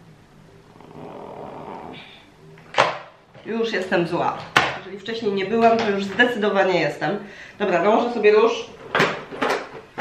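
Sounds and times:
person exhaling breathily: 0:00.8 - 0:02.3.

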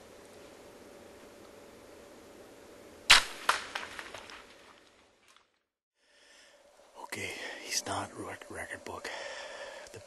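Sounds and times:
bow shot cracks: 0:03.1 - 0:04.8
small crackles: 0:03.4 - 0:05.7.

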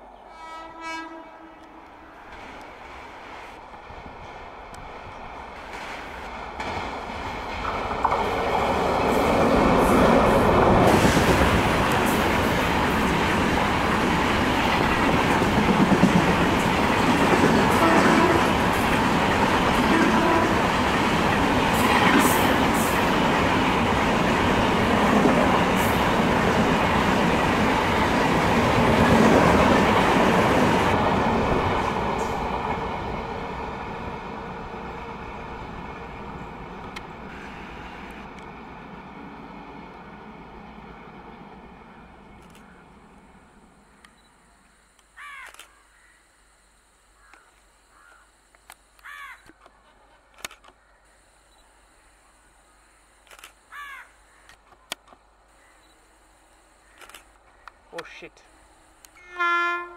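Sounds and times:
train coaches rushing and rattling: 0:02.2 - 0:42.4.

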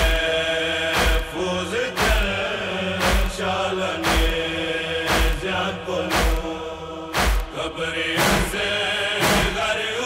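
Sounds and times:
deep beat: 0:00.0 - 0:09.7
chanted vocals: 0:00.0 - 0:10.0
steady drone: 0:00.0 - 0:10.0.

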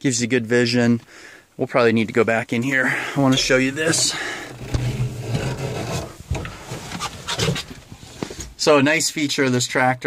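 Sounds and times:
low steady hum: 0:02.5 - 0:07.0
rubbing and shuffling: 0:02.7 - 0:08.7.

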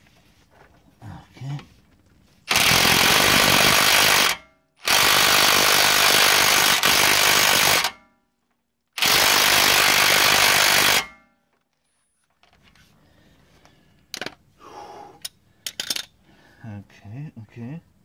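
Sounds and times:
impact wrench hammering: 0:02.5 - 0:08.1.

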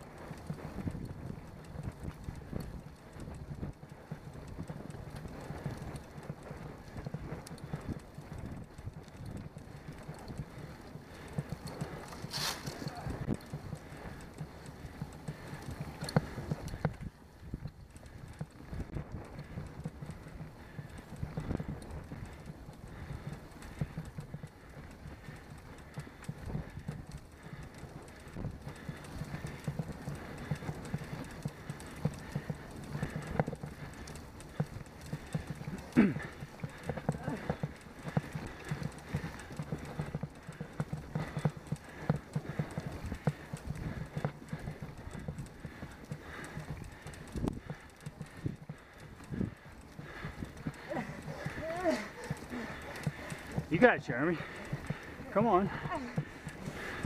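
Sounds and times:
bicycle rattling and knocking: 0:00.0 - 0:57.0
tyre and wind rumble: 0:00.0 - 0:57.0.

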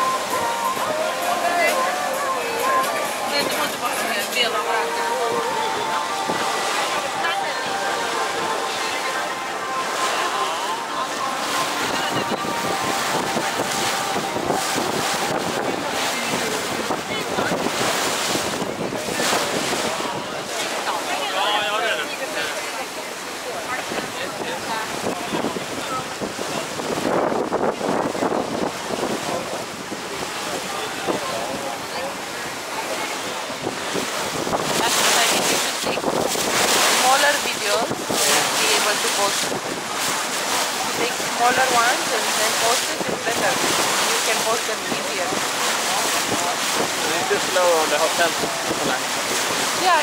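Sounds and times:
water rushing along hull: 0:00.0 - 0:50.0
wind buffeting microphone: 0:11.5 - 0:20.9, 0:23.8 - 0:50.0.

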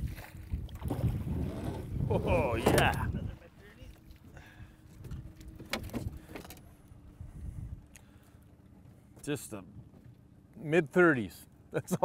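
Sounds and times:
low wind rumble on microphone: 0:00.0 - 0:03.6, 0:04.3 - 0:08.2.

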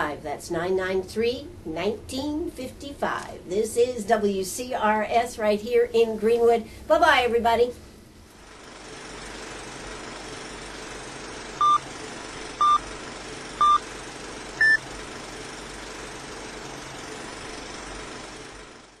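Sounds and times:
projector hiss: 0:08.2 - 0:19.0
short countdown beeps: 0:11.6 - 0:11.8, 0:12.6 - 0:12.8, 0:13.6 - 0:13.8, 0:14.6 - 0:14.8
higher-pitched beep: 0:14.6 - 0:14.8.

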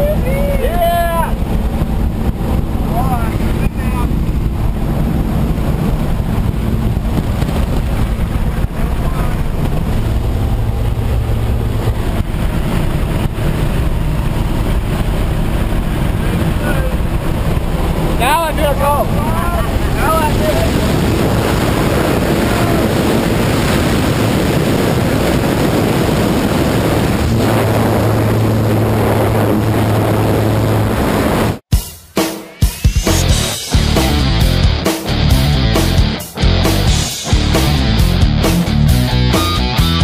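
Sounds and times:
aircraft engine and wind rush: 0:00.0 - 0:31.7.

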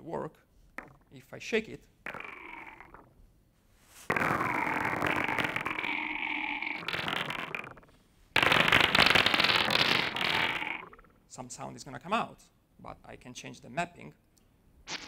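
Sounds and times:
electronic crackling noise: 0:02.1 - 0:03.1, 0:04.1 - 0:11.1.

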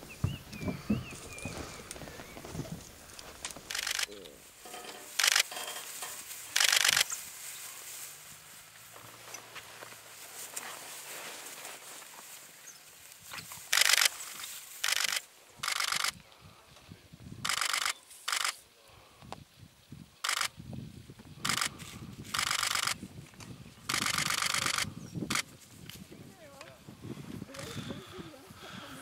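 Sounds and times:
low rustling: 0:00.0 - 0:15.1
camera shutters clicking rapidly: 0:03.7 - 0:04.1, 0:05.2 - 0:05.5, 0:06.5 - 0:07.1, 0:13.7 - 0:14.2, 0:14.8 - 0:16.1, 0:17.4 - 0:18.6, 0:20.2 - 0:20.5, 0:21.4 - 0:23.0, 0:23.9 - 0:25.5.

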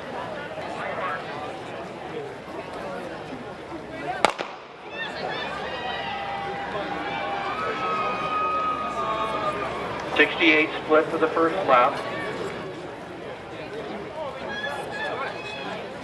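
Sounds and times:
crowd voices: 0:00.0 - 0:16.0
starter's gun firing: 0:04.2 - 0:04.6
spectators cheering and shouting: 0:04.3 - 0:12.6, 0:14.3 - 0:16.0.

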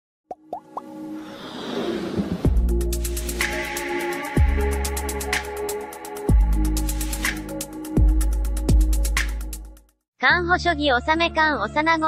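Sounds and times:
music swell: 0:00.9 - 0:07.6.

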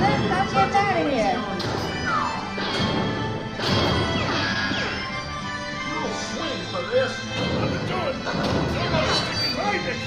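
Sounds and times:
dark ride soundtrack music: 0:00.0 - 0:10.0.

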